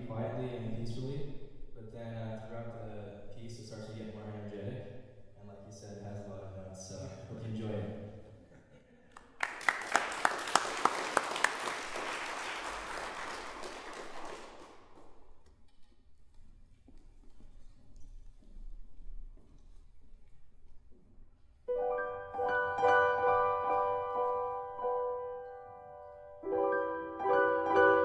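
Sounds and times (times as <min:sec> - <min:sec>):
audience applauding: 0:09.1 - 0:15.3.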